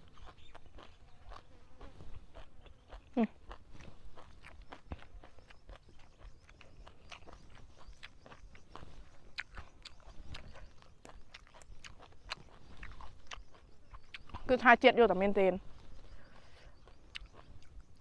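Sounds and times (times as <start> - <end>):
chewing with wet mouth clicks: 0.0 - 14.6, 15.9 - 18.0.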